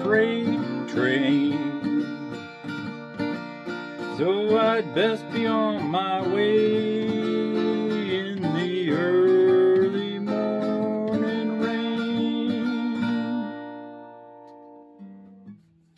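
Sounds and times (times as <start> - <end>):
acoustic guitar strumming: 0.0 - 15.9.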